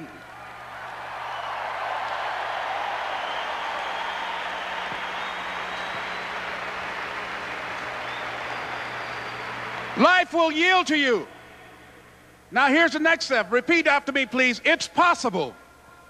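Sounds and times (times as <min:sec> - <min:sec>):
large crowd applauding: 0:00.3 - 0:10.2.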